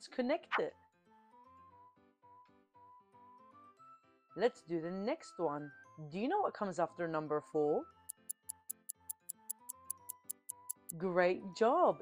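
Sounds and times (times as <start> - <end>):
soft background music: 0.0 - 12.0
clock ticking: 8.0 - 11.0.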